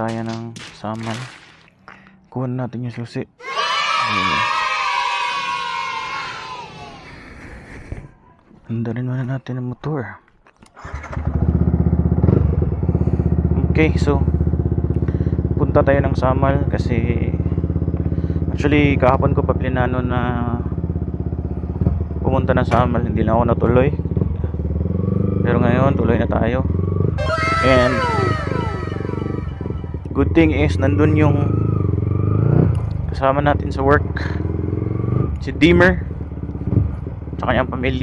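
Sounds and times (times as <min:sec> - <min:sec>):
motorcycle engine idling: 0:11.2 - 0:24.9
electronic tones gliding down: 0:27.2 - 0:30.2.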